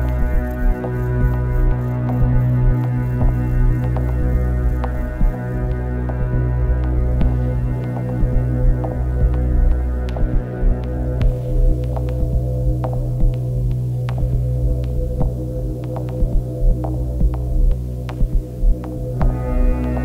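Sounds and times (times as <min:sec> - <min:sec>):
electronic low drone: 0:00.0 - 0:20.0.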